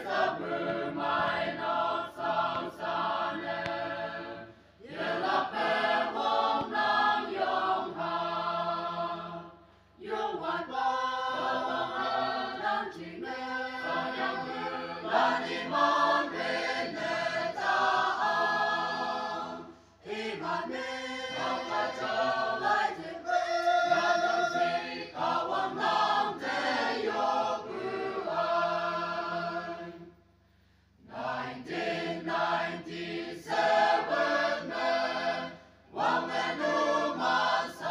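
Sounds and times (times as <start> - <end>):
choir singing: 0.0 - 30.2, 31.0 - 37.9.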